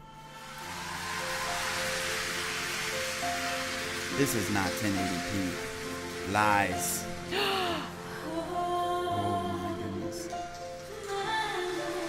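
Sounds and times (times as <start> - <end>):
audience noise: 0.0 - 7.3.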